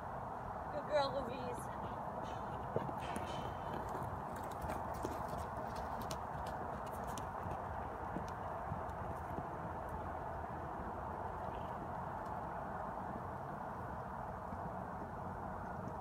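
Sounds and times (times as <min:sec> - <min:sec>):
horse hoofbeats on dirt: 0:01.5 - 0:16.0.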